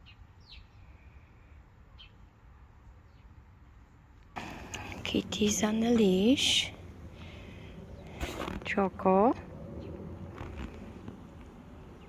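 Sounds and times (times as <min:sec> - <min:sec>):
outdoor ambient noise: 0:00.0 - 0:12.0
faint low hum: 0:03.1 - 0:12.0.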